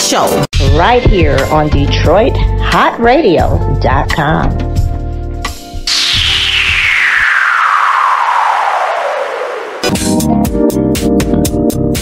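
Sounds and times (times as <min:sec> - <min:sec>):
noise sweep falling in pitch: 0:05.9 - 0:10.2
radio jingle music: 0:05.9 - 0:10.2.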